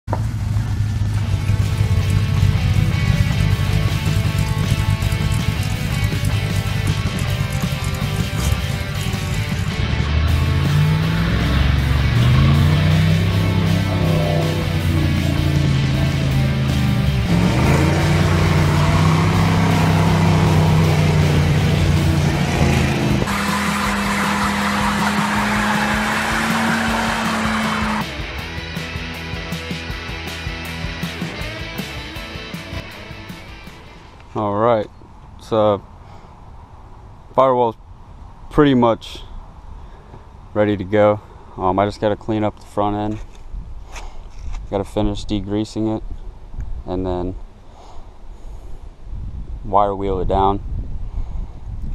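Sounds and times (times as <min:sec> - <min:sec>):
engine running and revving: 0:00.0 - 0:33.6
music: 0:01.2 - 0:34.2.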